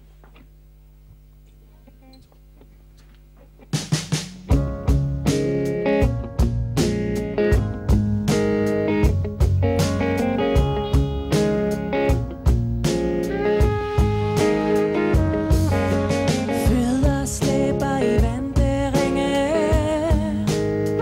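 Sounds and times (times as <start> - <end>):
faint low hum: 0.0 - 3.8
electric guitar: 1.6 - 21.0
drum kit: 3.6 - 21.0
live pop band playing: 3.8 - 21.0.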